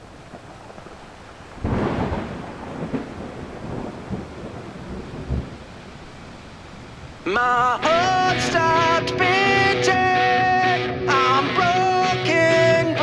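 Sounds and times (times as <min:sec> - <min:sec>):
thunder: 0:00.0 - 0:06.2
steady rain: 0:00.0 - 0:08.8.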